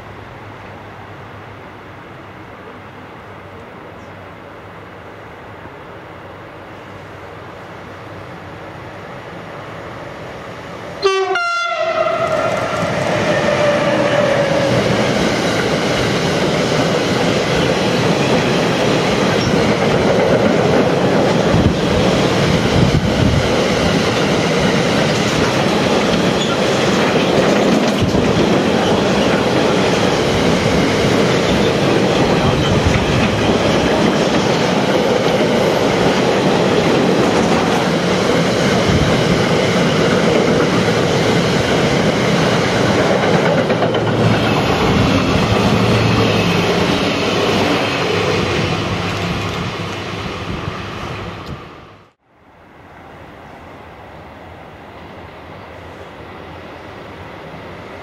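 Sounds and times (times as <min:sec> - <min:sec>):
locomotive horn: 0:11.0 - 0:14.7
freight train rumbling and clattering: 0:11.4 - 0:51.7.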